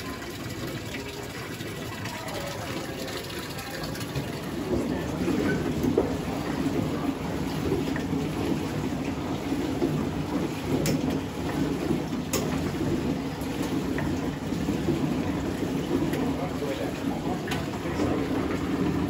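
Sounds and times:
water splashing from hand pump: 0:00.0 - 0:19.0.

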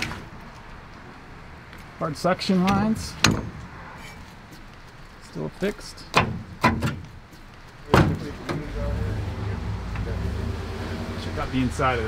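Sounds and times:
low outdoor background: 0:00.0 - 0:12.0.

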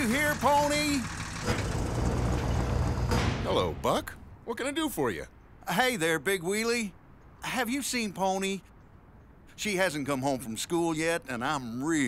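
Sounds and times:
cartoon truck engine rumble: 0:00.0 - 0:03.5.

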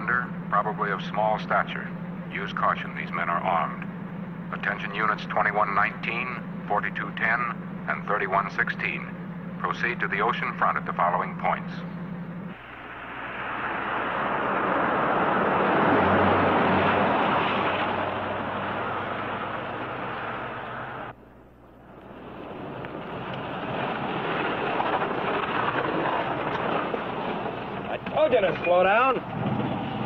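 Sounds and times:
surf breaking on beach: 0:12.6 - 0:19.6, 0:22.3 - 0:27.9.

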